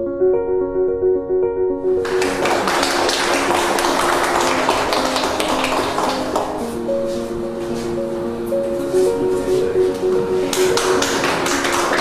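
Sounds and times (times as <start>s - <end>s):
soft background music: 0.0s - 12.0s
group clapping: 2.0s - 6.8s, 10.5s - 12.0s.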